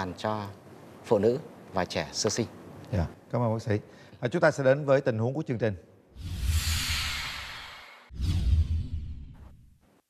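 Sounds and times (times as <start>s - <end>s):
whoosh sound effect: 6.2s - 9.6s
deep rumble: 6.2s - 9.7s.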